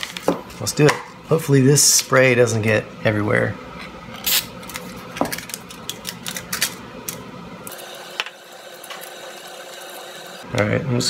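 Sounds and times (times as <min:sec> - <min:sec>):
aluminum foil crinkling: 0:04.3 - 0:07.2.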